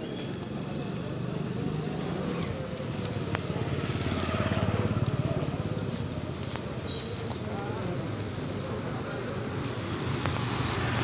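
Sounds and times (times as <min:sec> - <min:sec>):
motorcycle engine approaching: 0:01.2 - 0:11.0.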